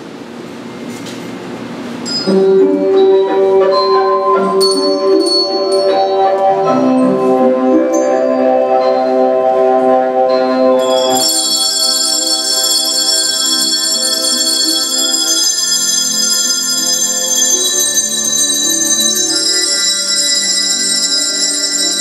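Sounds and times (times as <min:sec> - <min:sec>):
handbell choir playing: 0:02.0 - 0:22.0.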